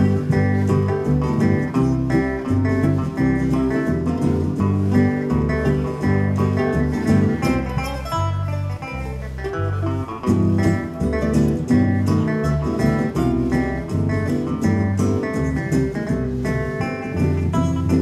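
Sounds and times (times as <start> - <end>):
picked acoustic guitar: 0.0 - 18.0
rhythmic bass line: 0.0 - 18.0.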